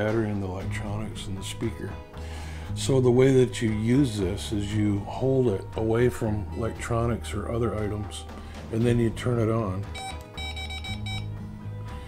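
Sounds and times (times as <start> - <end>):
meter beeping: 10.0 - 11.3.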